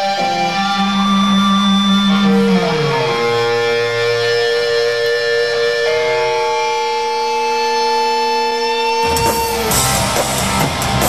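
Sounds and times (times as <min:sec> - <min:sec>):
held electric guitar notes: 0:00.0 - 0:11.0
rock band with drums: 0:08.8 - 0:11.0.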